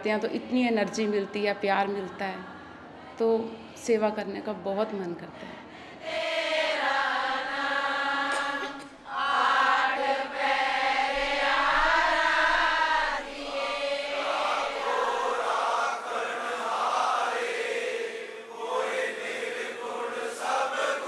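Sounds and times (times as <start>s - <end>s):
congregation chanting in unison: 0.0s - 4.2s, 5.4s - 21.0s.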